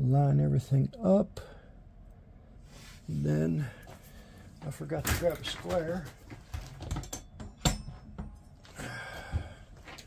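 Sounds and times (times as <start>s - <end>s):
tools knocking and clicking: 6.6s - 8.5s.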